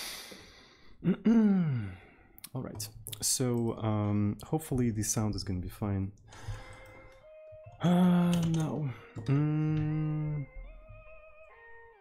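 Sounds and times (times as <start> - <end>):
man sighing: 0.0 - 2.3, 8.8 - 10.4
man breathing out noisily: 6.3 - 7.0.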